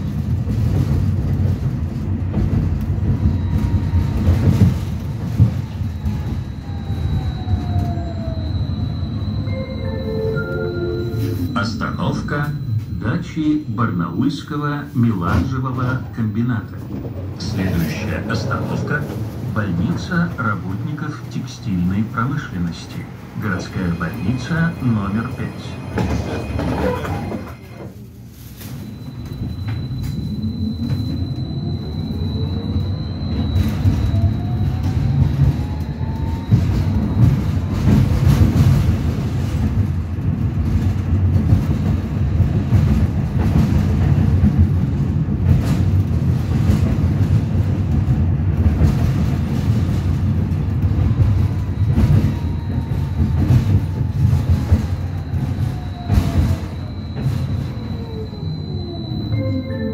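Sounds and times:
tram wheels rumbling on rails: 0.0s - 59.9s
tram motor whine: 3.2s - 14.6s, 28.7s - 38.0s, 51.1s - 59.9s.

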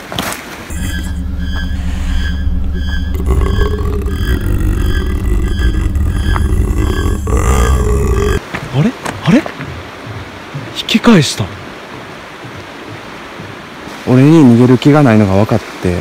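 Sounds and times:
short high beeps: 0.7s - 4.3s
deep droning rumble: 0.7s - 8.4s.

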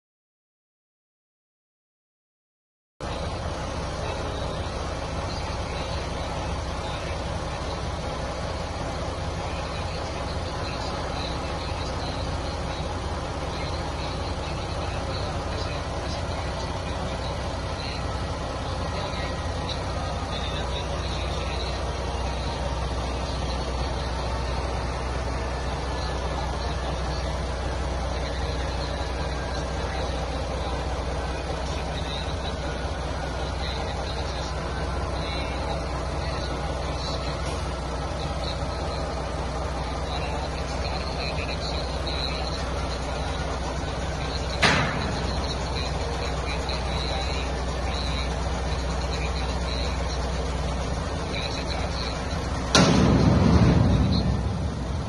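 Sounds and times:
indistinct voices: 3.0s - 55.0s
truck engine idling: 3.0s - 55.0s.

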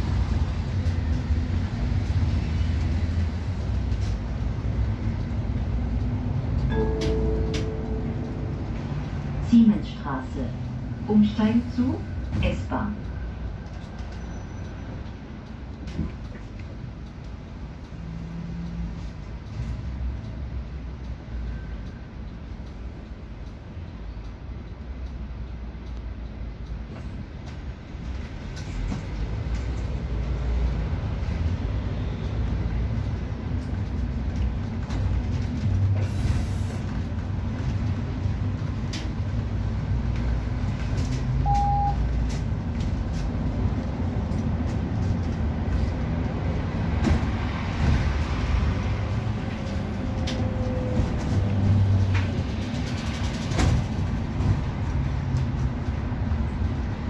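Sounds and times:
bus engine rumble: 0.0s - 57.0s
road noise: 0.0s - 57.0s
short beep: 41.4s - 42.0s.

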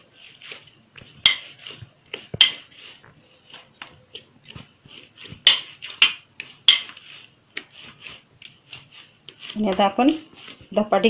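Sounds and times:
dough rubbing against metal plate: 0.0s - 11.0s.

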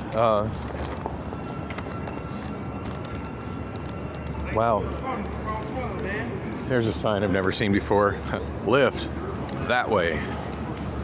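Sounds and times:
street noise rumble: 0.0s - 11.0s.

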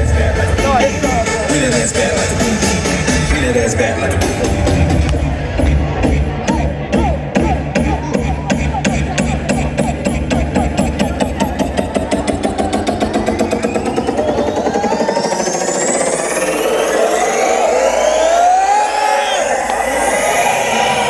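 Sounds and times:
electronic dance music: 0.0s - 21.0s
drum roll: 10.1s - 16.6s
rising synth sweeps: 10.6s - 21.0s.

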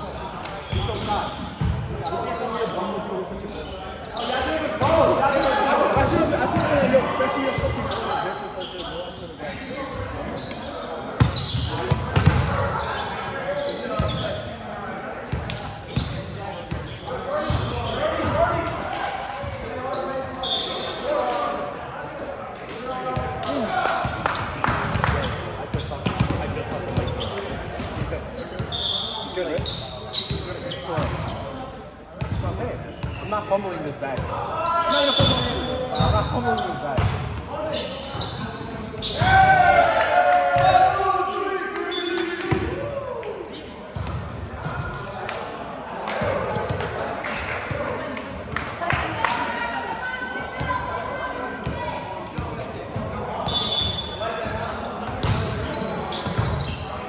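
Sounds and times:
players chattering: 0.0s - 57.0s.

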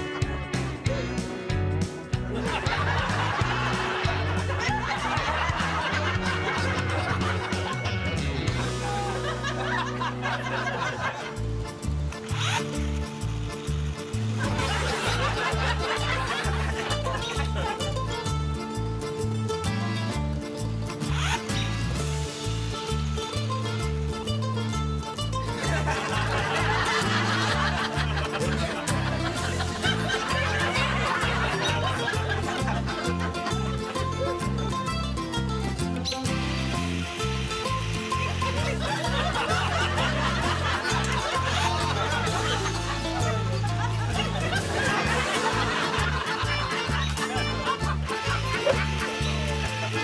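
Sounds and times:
background music with bass line: 0.0s - 50.0s
group of people laughing: 2.2s - 11.8s, 14.4s - 18.2s, 25.5s - 34.5s, 38.2s - 50.0s.

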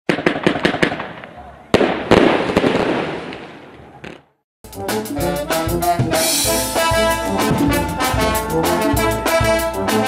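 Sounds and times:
fireworks bangs: 0.1s - 4.4s
fireworks crackling: 0.1s - 4.4s.

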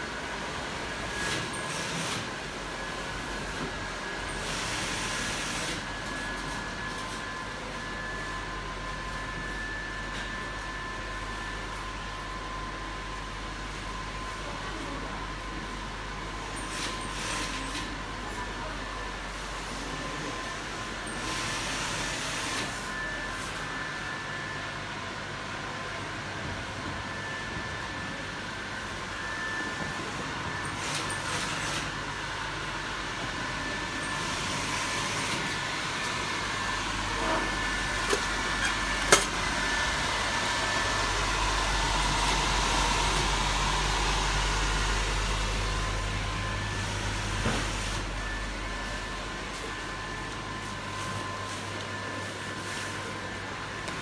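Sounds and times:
electric air blower whirring: 25.6s - 54.0s.

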